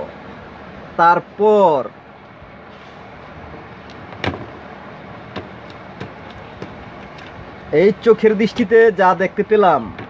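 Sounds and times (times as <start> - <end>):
steady background noise: 0.0 - 10.0
light clicks and taps: 5.4 - 7.4.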